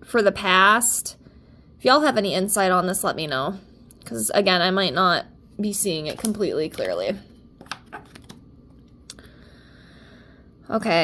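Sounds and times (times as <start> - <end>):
cards clicking and tapping: 7.6 - 8.4.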